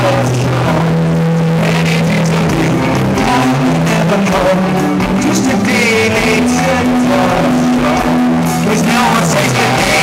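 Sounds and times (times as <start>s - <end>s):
low guitar and bass notes: 0.0s - 10.0s
rock band playing live: 0.0s - 10.0s.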